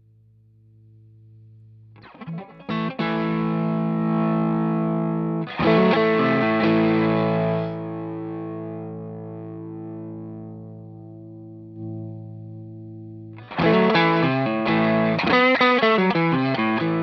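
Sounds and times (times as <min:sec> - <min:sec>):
distorted fuzz electric guitar chords: 0:02.0 - 0:17.0.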